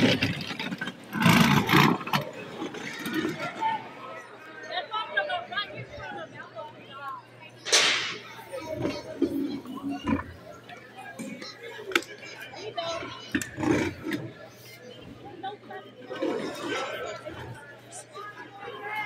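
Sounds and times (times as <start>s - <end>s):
spectators chattering and calling out: 0.0s - 19.0s
loud rustle-like burst: 7.7s - 8.3s.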